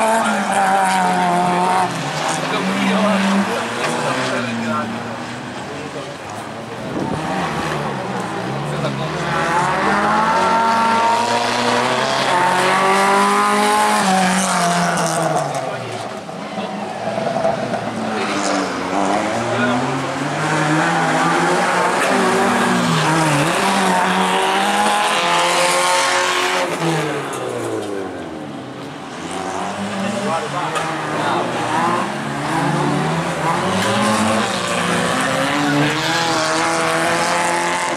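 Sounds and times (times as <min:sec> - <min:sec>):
racing car engines revving: 0:00.0 - 0:37.9.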